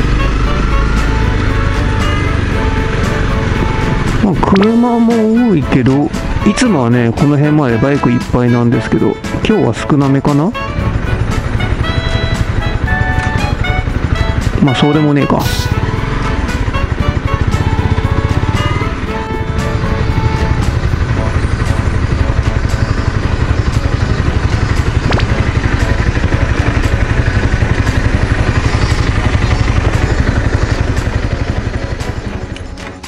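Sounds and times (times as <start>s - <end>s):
background music: 0.0s - 33.0s
motorcycle engine idling: 0.0s - 33.0s.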